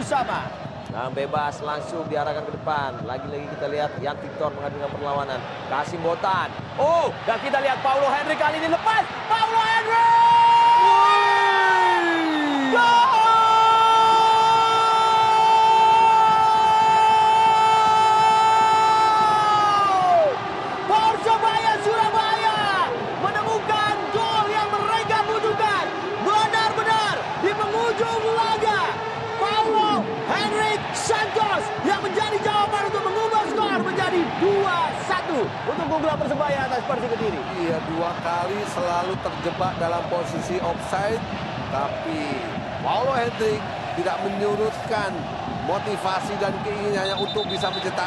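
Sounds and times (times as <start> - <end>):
excited shouted commentary: 0.0 - 48.0
stadium crowd noise: 0.0 - 48.0
commentator's drawn-out goal call: 47.0 - 48.0.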